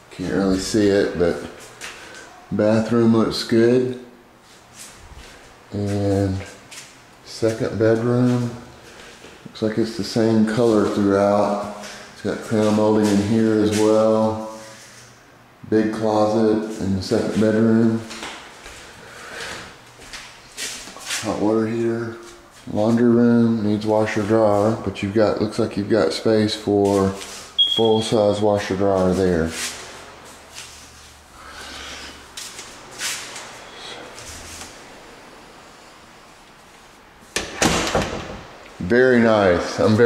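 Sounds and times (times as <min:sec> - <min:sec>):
closet door sliding open: 0:37.4 - 0:38.5.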